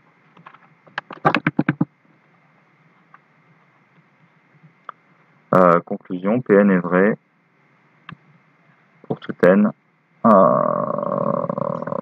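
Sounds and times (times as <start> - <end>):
man's drawn-out hesitation sound: 5.5 - 7.2, 9.1 - 12.0.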